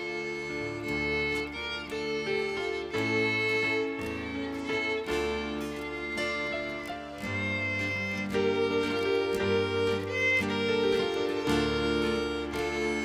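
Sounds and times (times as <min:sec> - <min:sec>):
acoustic guitar: 0:00.0 - 0:13.0
keyboard chords: 0:00.0 - 0:13.0
violin melody: 0:00.0 - 0:13.0.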